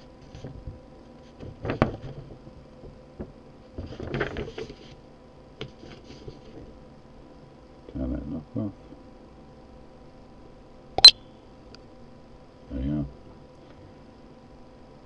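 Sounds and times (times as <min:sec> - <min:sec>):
low electrical hum: 0:00.0 - 0:15.0.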